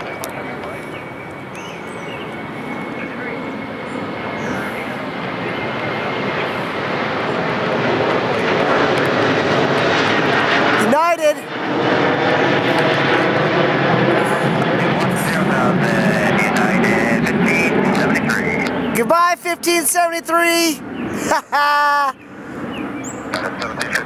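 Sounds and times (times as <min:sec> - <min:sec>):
jet airliner flying overhead: 0:00.0 - 0:24.0.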